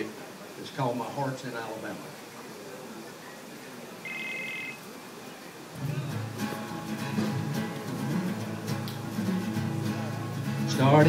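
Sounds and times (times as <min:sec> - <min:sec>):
short electronic beep: 0:04.0 - 0:04.8
strummed acoustic guitar: 0:05.8 - 0:11.0.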